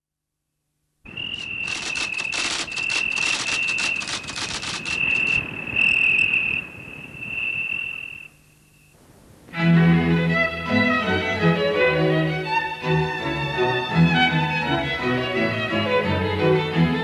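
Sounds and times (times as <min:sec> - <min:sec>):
irregular crackling: 0:01.1 - 0:08.4
insect trilling: 0:01.1 - 0:08.9.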